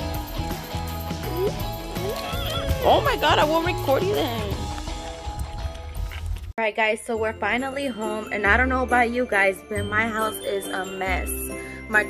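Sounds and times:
background music with bass: 0.0s - 6.5s.

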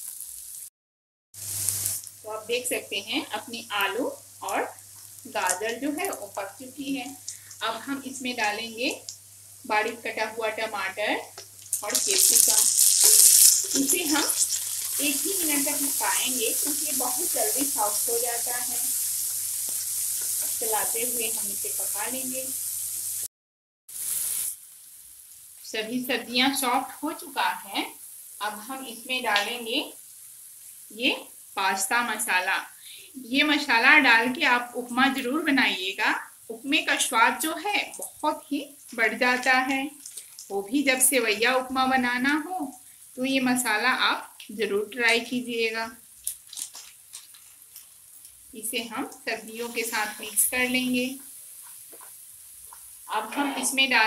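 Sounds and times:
vegetables sizzling in hot oil: 0.0s - 0.7s, 1.4s - 23.3s, 23.9s - 54.0s.

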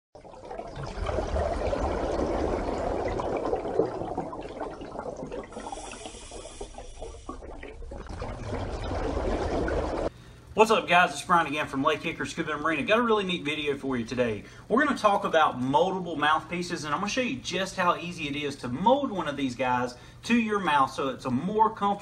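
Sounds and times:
rushing bubbling water: 0.2s - 10.1s.

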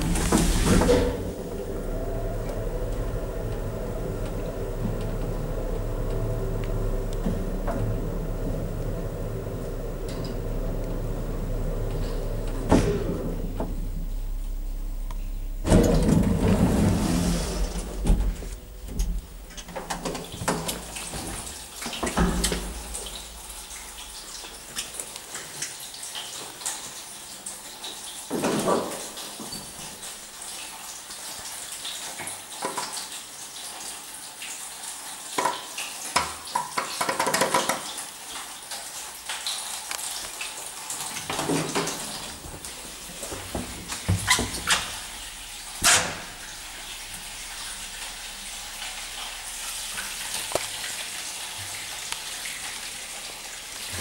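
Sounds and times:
elevator machine humming: 0.0s - 24.4s, 42.0s - 50.6s
elevator rumbling and clattering: 0.0s - 24.7s, 41.3s - 51.0s.

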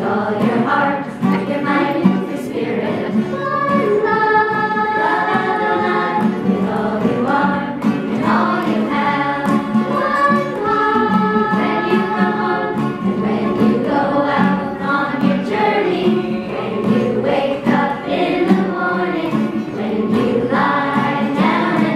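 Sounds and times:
group singing: 0.0s - 21.9s.

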